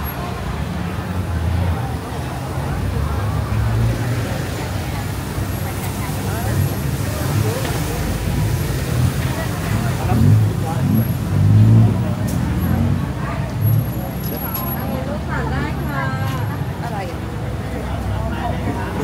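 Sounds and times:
motor traffic: 0.0s - 19.0s
people talking: 0.0s - 19.0s.

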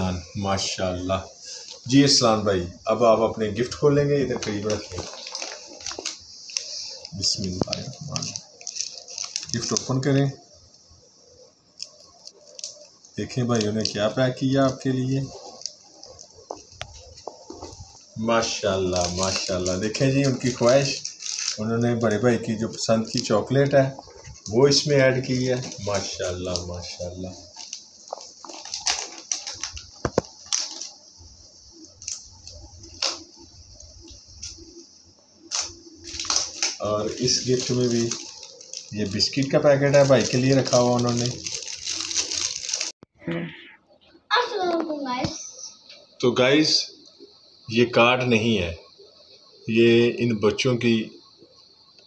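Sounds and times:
wrapping paper rustling and crackling: 0.0s - 10.3s, 11.8s - 31.0s, 31.7s - 34.7s, 35.4s - 43.0s.

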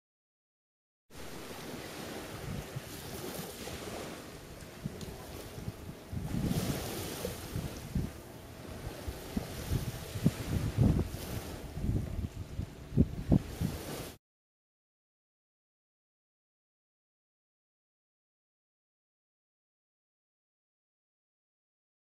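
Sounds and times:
sea water and surf: 1.1s - 14.2s
wind buffeting microphone: 1.2s - 14.2s.

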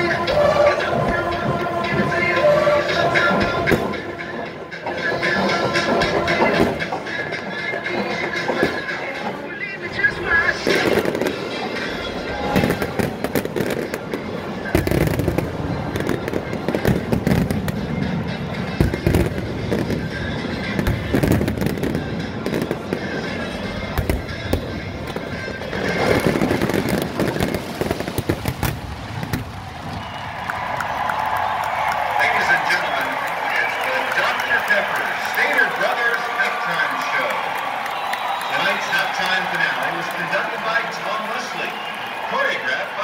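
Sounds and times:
band music: 0.0s - 28.4s, 31.0s - 43.0s
fireworks banging: 10.0s - 30.4s.

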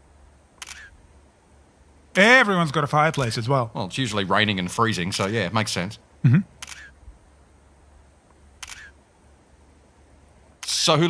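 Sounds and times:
camera shutter clicks: 0.6s - 0.9s, 5.2s - 5.4s, 6.6s - 7.0s, 8.6s - 9.0s.

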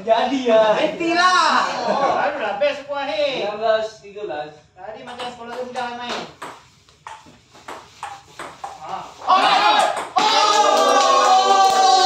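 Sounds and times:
ping pong ball ticking: 5.1s - 8.9s.

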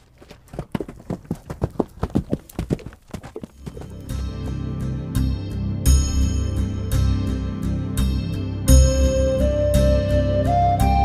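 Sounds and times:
horse hooves clip-clopping on pavement: 0.0s - 4.2s.

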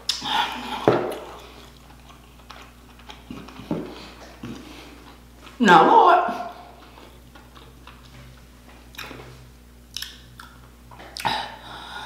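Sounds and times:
person chewing: 0.0s - 5.6s, 6.6s - 11.6s
steady low hum: 0.0s - 12.0s.

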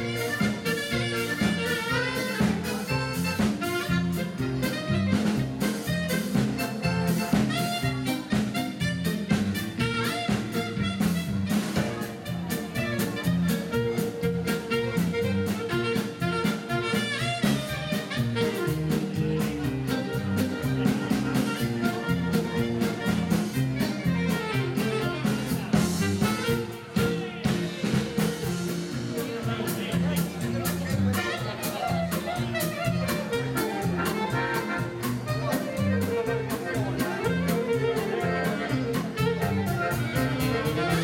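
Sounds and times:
saxophone melody: 0.0s - 29.2s, 30.4s - 41.0s
live dance band playing: 0.0s - 41.0s.

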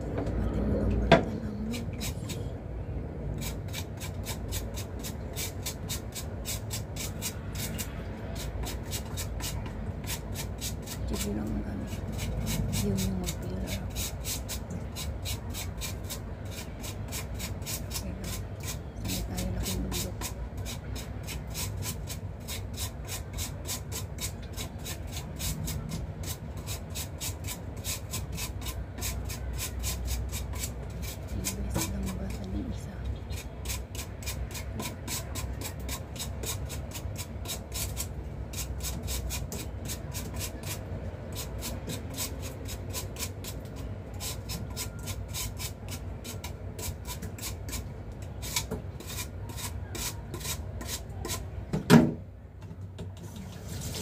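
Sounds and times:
knife scraping lotus root skin: 1.6s - 2.5s, 3.4s - 51.6s.

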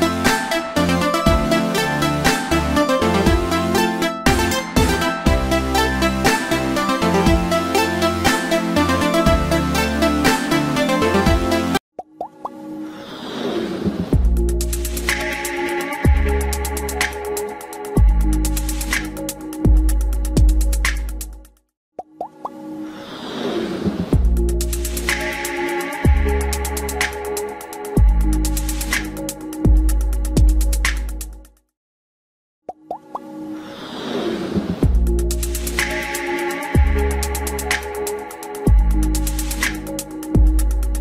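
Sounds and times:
electronic music: 0.0s - 11.8s, 14.2s - 21.5s, 24.2s - 31.4s, 34.8s - 41.0s.

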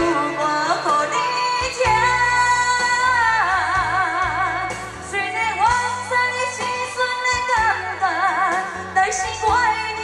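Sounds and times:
backing track: 0.0s - 10.0s
woman singing ballad: 0.0s - 10.0s.

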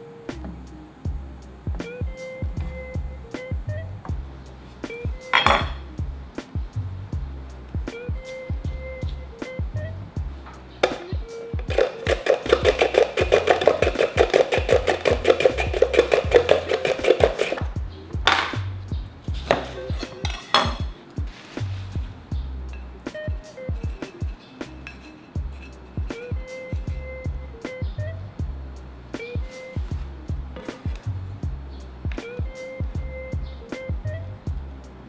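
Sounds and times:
background music: 0.0s - 35.0s.

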